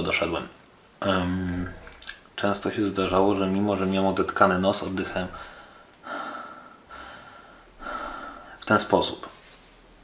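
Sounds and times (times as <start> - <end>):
man breathing through mouth: 5.4 - 8.6.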